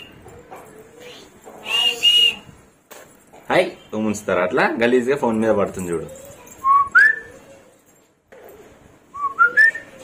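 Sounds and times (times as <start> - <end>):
person whistling rising notes: 1.6 - 2.4.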